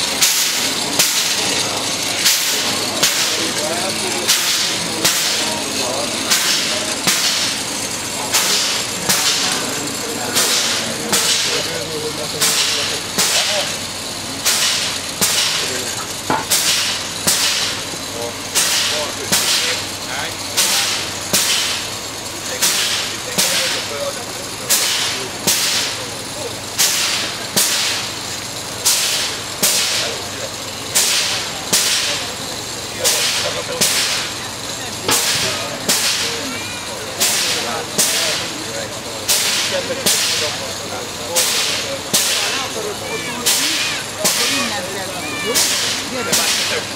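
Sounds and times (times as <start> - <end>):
steam locomotive hissing bursts: 0.0 - 46.9.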